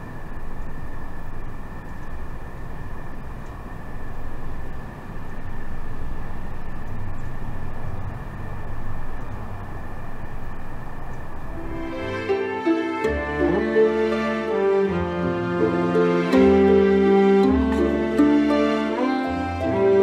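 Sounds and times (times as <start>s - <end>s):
low rumbling background noise: 0.0s - 20.0s.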